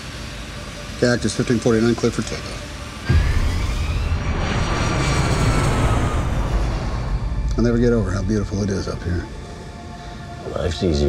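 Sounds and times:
faint high engine whine: 0:00.0 - 0:11.0
jet engines roaring: 0:00.0 - 0:11.0.

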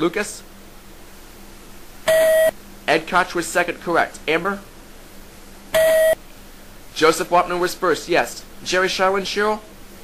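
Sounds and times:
electronic beep: 0:02.1 - 0:02.6, 0:05.8 - 0:06.2.

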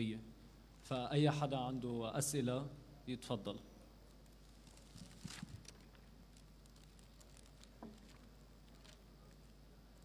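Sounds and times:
papers rustling: 0:04.5 - 0:09.4.

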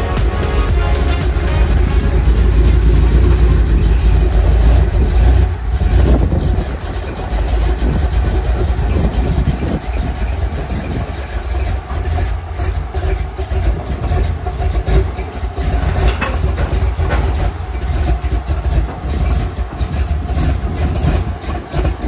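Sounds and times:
truck engine idling: 0:00.0 - 0:22.0.

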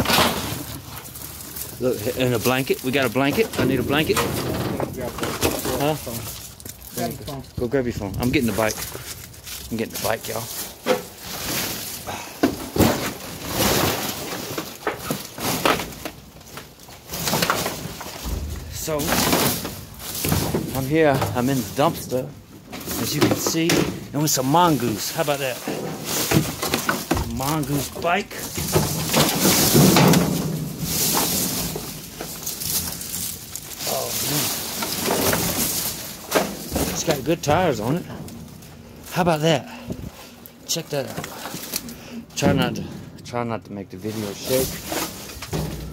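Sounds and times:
trash crunching underfoot: 0:00.0 - 0:45.9
sharp knocks and thumps: 0:25.6 - 0:33.4.

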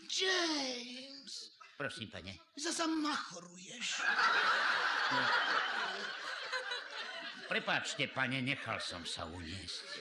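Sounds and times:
audience laughter: 0:03.9 - 0:10.0.

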